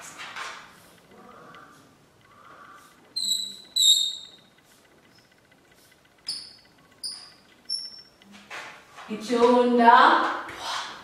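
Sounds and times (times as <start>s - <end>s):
chalk squeaking on blackboard: 2.8s - 8.2s.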